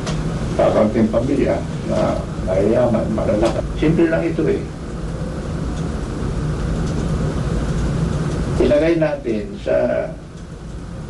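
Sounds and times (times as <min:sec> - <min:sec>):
faint hum: 0:00.0 - 0:11.0
low rumbling background noise: 0:00.0 - 0:11.0.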